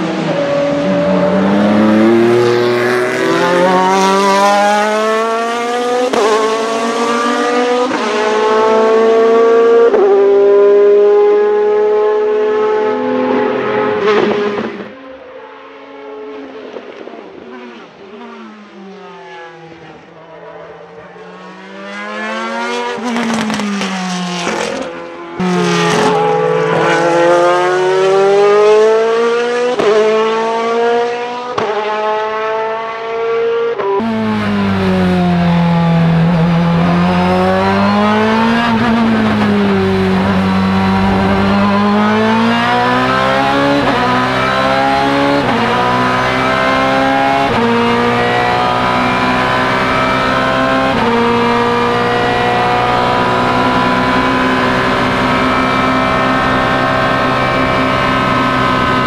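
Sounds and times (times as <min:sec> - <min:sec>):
race car engine at full throttle: 0:00.0 - 0:59.0.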